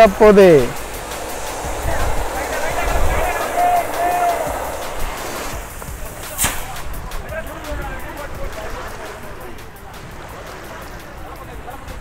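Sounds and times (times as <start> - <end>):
distant men's voices calling: 0.0 - 12.0
noisy outdoor background: 0.0 - 12.0
sharp click: 6.3 - 6.8.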